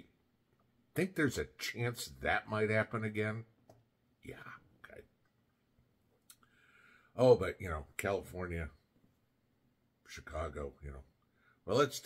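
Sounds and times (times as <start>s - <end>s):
faint breath-like noise: 6.4s - 7.2s, 11.2s - 11.7s.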